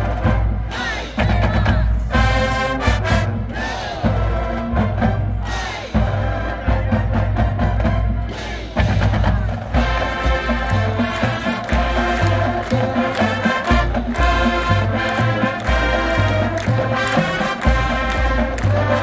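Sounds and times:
bass drums: 0.0s - 19.0s
marching band playing: 0.0s - 19.0s.

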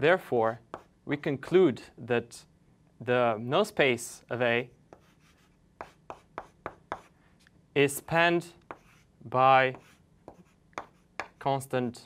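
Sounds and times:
chalk tapping and scraping on blackboard: 0.7s - 1.0s, 4.9s - 7.5s, 8.6s - 11.6s.

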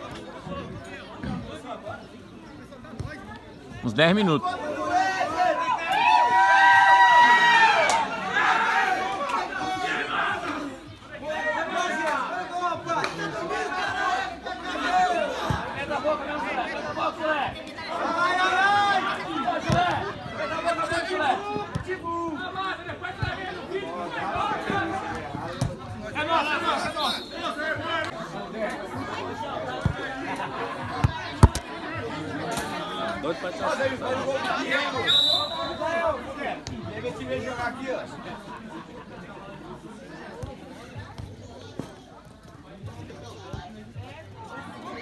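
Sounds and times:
people shouting and chattering: 0.0s - 45.0s.

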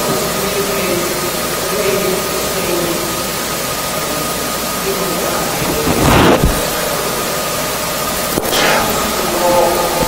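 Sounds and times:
steady loud hiss: 0.0s - 10.0s
rustling burst: 5.5s - 7.4s.

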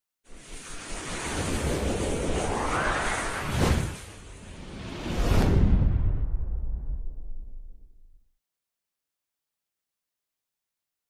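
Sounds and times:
whoosh rushing noise: 0.3s - 7.6s.

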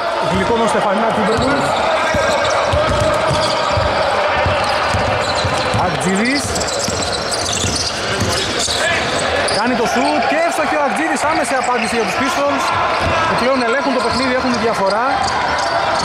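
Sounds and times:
basketball bouncing on hardwood: 1.3s - 8.5s.

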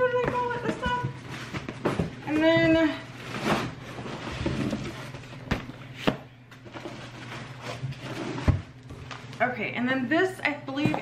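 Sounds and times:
cardboard boxes rustling: 0.0s - 9.4s.

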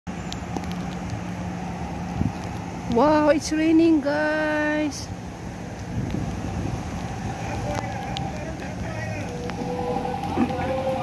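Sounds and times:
distant road traffic hum: 0.1s - 11.0s.

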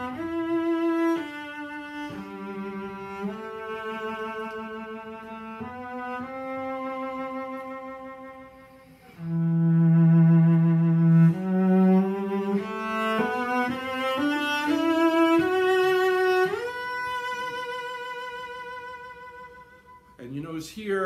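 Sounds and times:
bowed cello: 0.0s - 20.2s.

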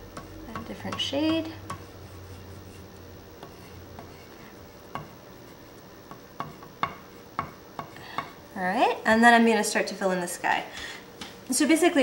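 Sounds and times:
oil pastel rubbing on paper: 1.8s - 4.5s.

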